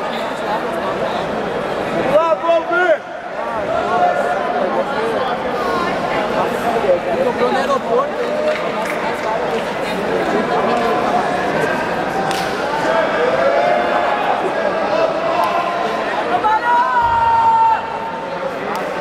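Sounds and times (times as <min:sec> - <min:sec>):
spectators calling out and chattering: 0:00.0 - 0:19.0.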